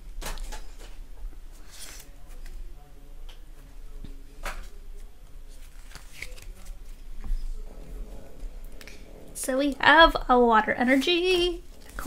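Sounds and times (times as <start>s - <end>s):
trading cards sliding and flicking: 1.6s - 2.5s
sharp card rustles: 5.6s - 6.8s.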